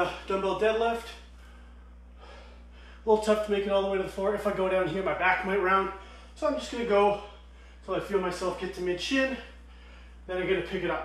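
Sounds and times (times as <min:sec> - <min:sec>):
low steady hum: 0:00.0 - 0:11.0
faint breath: 0:01.3 - 0:03.1, 0:06.0 - 0:06.4, 0:07.1 - 0:07.9, 0:09.4 - 0:10.3.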